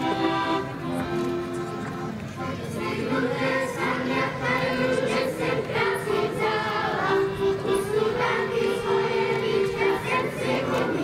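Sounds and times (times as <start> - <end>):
children singing folk song: 0.0 - 11.0.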